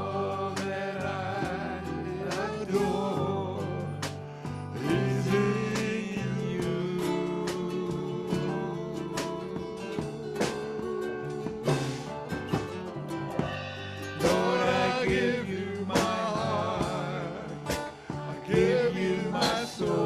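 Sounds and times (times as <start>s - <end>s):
people singing: 0.0s - 12.6s, 14.0s - 20.0s
strummed acoustic guitars: 0.0s - 20.0s
steady beat: 4.8s - 20.0s.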